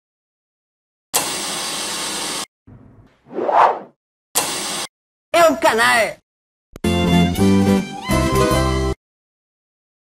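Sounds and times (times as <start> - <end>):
whoosh: 2.8 - 4.0.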